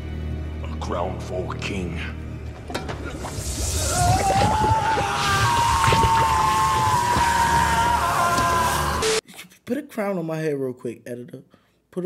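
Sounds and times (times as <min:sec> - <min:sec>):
hissing and sizzling: 0:03.0 - 0:09.2
man screaming: 0:03.7 - 0:09.2.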